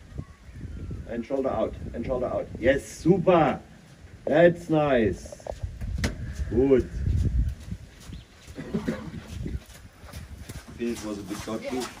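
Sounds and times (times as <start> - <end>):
hooves thudding in sand: 1.1 - 12.0.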